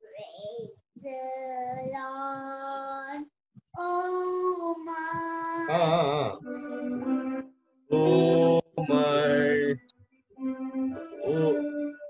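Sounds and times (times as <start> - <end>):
man singing held notes: 5.7 - 6.5, 7.9 - 9.8.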